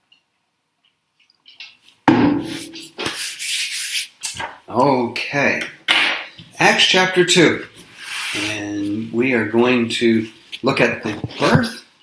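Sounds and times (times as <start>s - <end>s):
handling noise on microphone: 10.1s - 11.8s.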